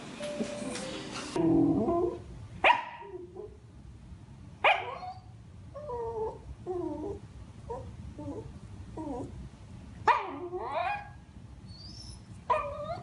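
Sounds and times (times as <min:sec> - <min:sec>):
dog whining: 0:01.4 - 0:02.3, 0:04.8 - 0:09.4, 0:10.1 - 0:13.0
dog barking: 0:02.6 - 0:03.1, 0:04.6 - 0:05.2.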